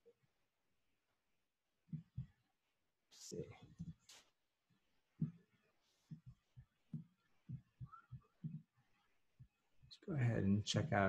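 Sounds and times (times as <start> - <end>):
faint dull low thuds: 6.1 - 8.7.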